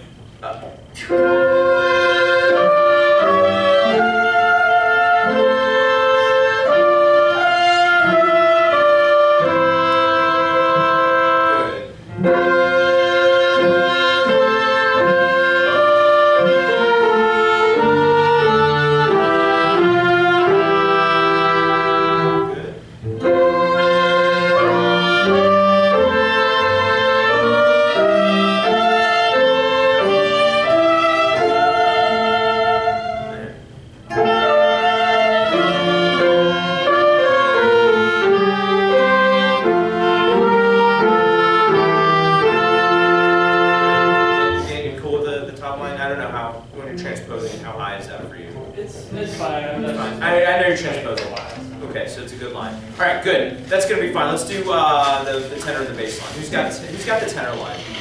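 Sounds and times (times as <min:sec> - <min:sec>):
strings and winds ensemble: 0:01.2 - 0:33.5, 0:34.1 - 0:44.6.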